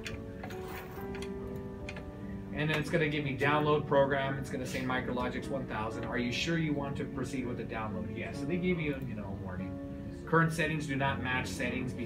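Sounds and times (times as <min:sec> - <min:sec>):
background music with held notes: 0:00.0 - 0:12.0
keyboard and mouse clicks: 0:01.0 - 0:02.1.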